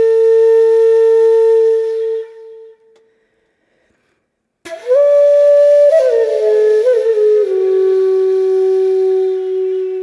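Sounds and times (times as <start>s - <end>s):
flute holding long note: 0.0s - 2.9s, 4.7s - 10.0s.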